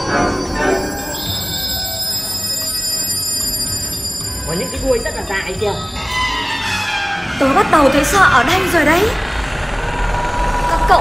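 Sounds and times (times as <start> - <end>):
sustained high tones: 0.0 - 9.6
droning background: 0.0 - 11.0.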